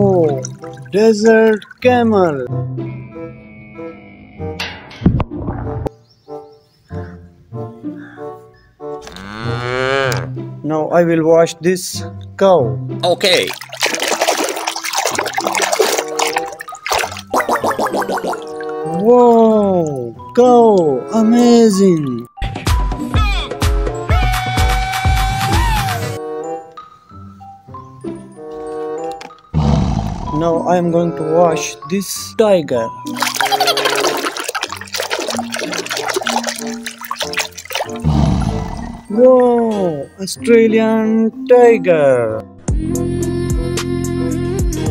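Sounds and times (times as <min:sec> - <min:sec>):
water sloshing and splashing: 0:00.0 - 0:02.0, 0:13.0 - 0:20.4, 0:33.1 - 0:39.9
background music: 0:00.0 - 0:44.9.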